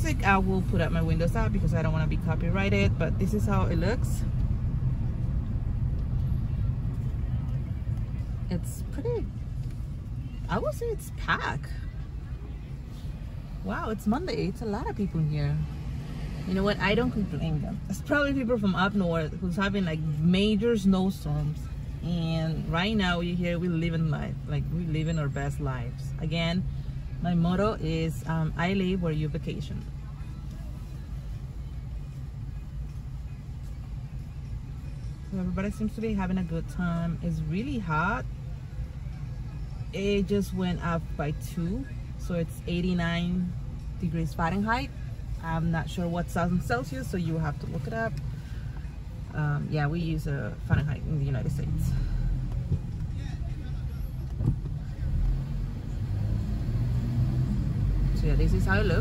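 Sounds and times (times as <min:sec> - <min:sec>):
car engine: 0:00.0 - 0:59.0
road noise: 0:00.0 - 0:59.0
street noise through windows: 0:00.0 - 0:59.0.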